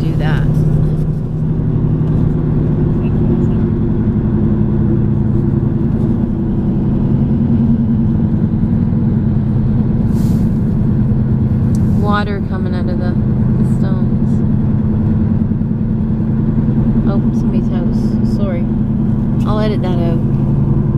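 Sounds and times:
car engine and road noise: 0.0s - 20.9s.

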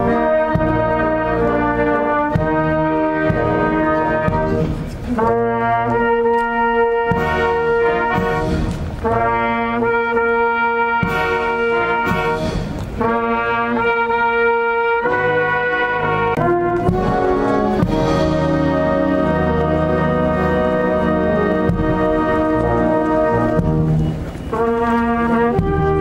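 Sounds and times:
brass band playing solemn chords: 0.0s - 26.0s.

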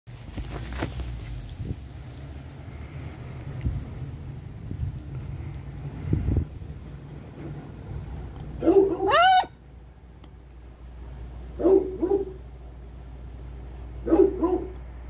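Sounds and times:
wind rumble on microphone: 0.2s - 8.6s.

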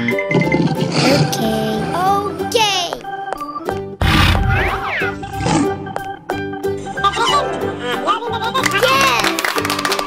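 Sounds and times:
children's background music: 0.0s - 10.0s.

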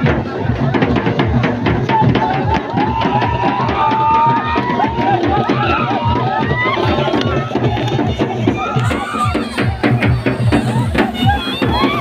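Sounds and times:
crowd shouting and singing along: 0.0s - 12.0s
loud dance music with heavy drums: 0.0s - 12.0s.

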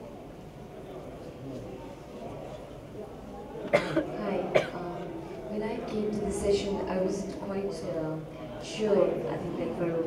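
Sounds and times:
person coughing: 3.7s - 4.8s.

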